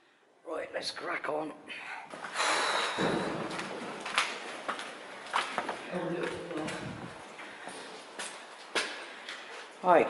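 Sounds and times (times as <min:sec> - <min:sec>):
footsteps on hard floor: 0:03.0 - 0:09.0.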